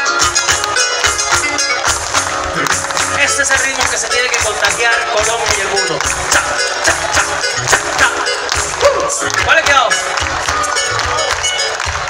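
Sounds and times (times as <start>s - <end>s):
live band playing folk-pop: 0.0s - 12.0s.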